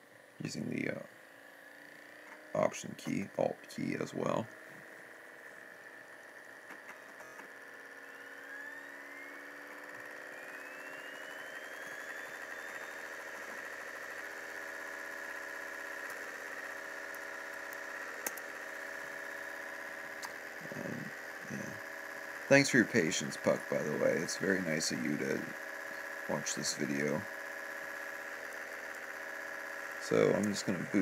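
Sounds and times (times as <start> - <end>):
laptop fan and drives humming: 0.0 - 31.0
rising whine of disc spinning: 0.0 - 31.0.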